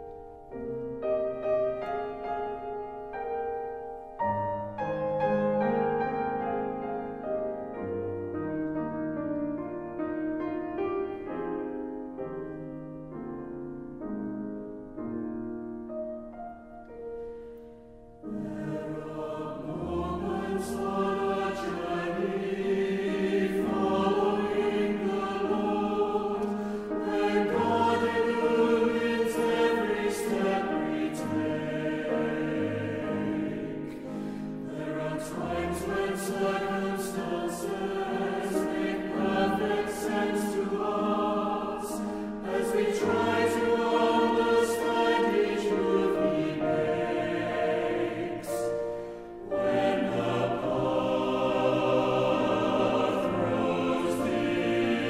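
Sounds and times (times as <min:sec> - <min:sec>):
choir singing worship song: 0:17.5 - 0:55.0.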